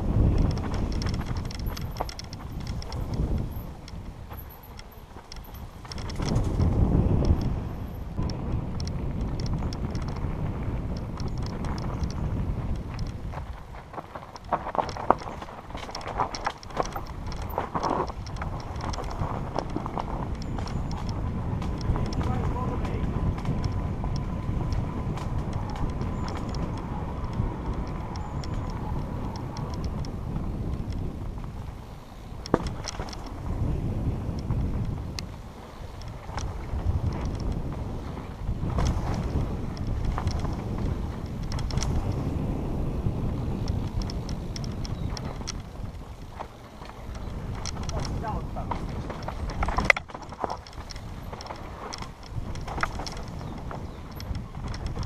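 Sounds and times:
bike rattling over bumps: 0.0s - 55.0s
bike tyres on dirt: 0.0s - 55.0s
wind on microphone: 0.0s - 55.0s.

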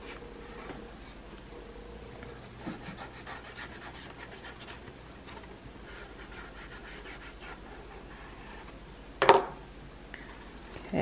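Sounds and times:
glue pen scratching on paper: 2.6s - 4.8s.

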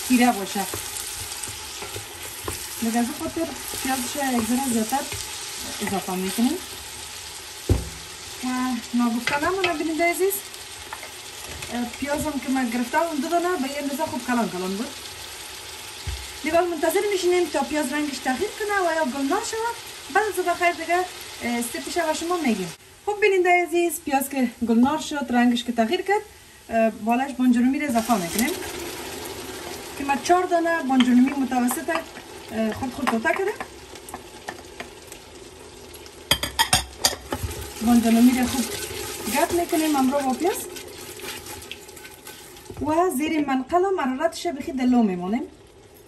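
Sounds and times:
onions sizzling in oil: 0.0s - 46.0s
low thump: 7.7s - 8.0s.

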